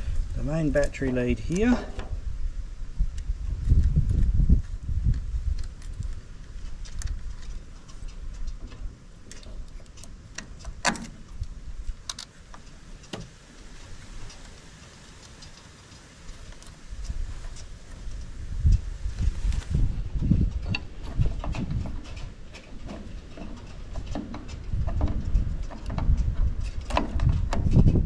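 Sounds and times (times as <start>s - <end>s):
electrical wires clicking and tapping: 3.1s - 28.0s.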